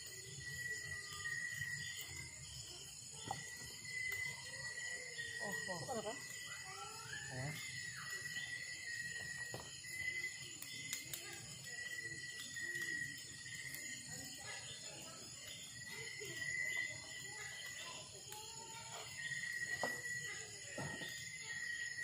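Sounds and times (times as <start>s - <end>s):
night insects chirring: 0.0s - 22.0s
wood fire cracks: 0.2s - 22.0s.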